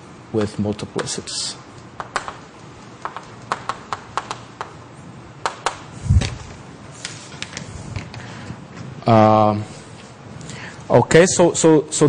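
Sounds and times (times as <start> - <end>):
chalk clicking on blackboard: 2.0 - 2.4, 3.0 - 4.8, 5.4 - 5.9.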